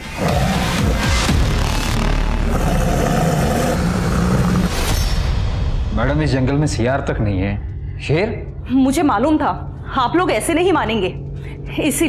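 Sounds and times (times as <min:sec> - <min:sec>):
dramatic suspense music: 0:00.0 - 0:12.0
loud low rumbling: 0:00.2 - 0:11.8.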